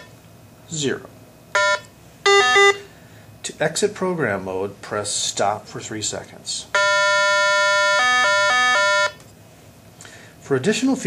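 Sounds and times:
two-pitch alternating phone tone: 1.5 - 2.9, 6.8 - 9.2.

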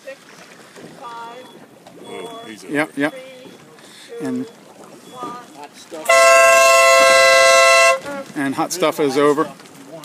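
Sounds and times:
water noise: 0.0 - 10.0.

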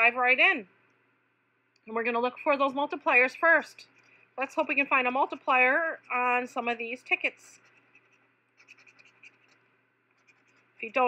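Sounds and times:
coin scratching lottery ticket: 7.2 - 9.6, 10.2 - 11.0.

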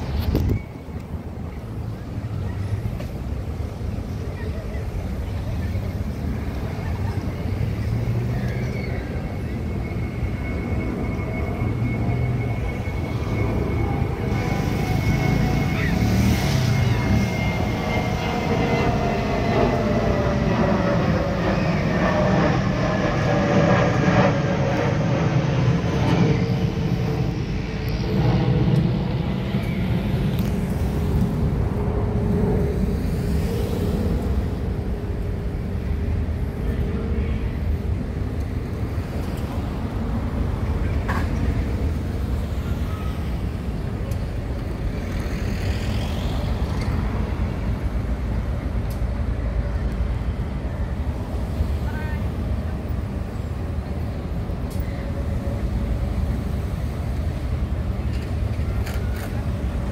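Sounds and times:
diesel locomotive rumble: 0.0 - 59.9.

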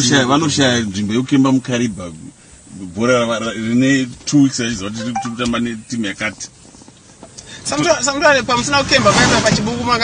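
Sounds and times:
faint recording hiss: 0.0 - 10.0
recorded conversation speech: 0.0 - 10.0.

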